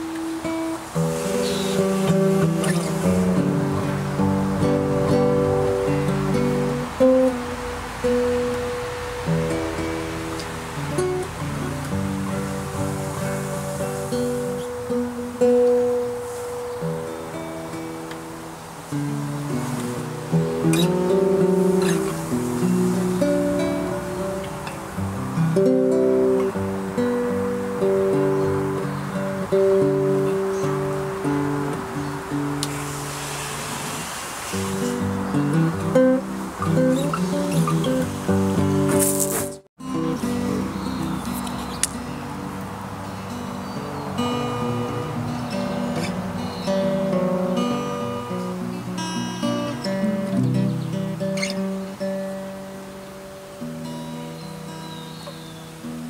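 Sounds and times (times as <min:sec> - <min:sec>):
classical guitar playing: 0:00.0 - 0:56.0.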